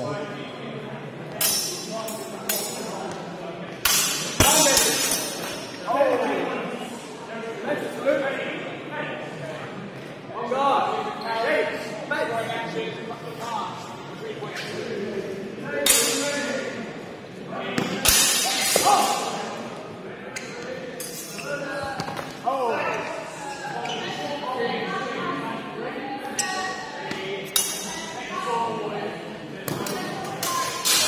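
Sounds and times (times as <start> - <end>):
voices in echoing hall: 0.0 - 31.0
steel swords clashing: 3.8 - 5.7.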